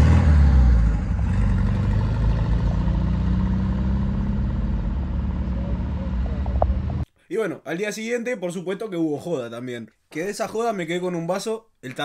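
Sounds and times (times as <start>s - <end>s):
van engine driving past: 0.0s - 7.0s.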